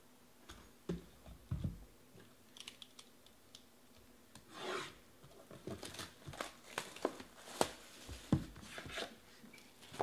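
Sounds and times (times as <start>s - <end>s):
plastic wrap crinkling: 5.6s - 8.3s.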